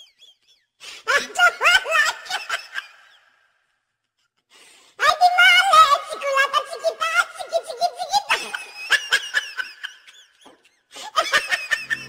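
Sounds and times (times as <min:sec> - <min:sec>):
person laughing heartily: 0:08.4 - 0:12.0.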